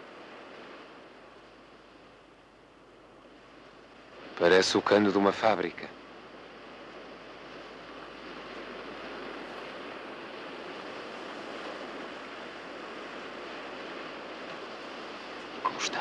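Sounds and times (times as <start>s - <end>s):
sea surf: 0.0s - 16.0s.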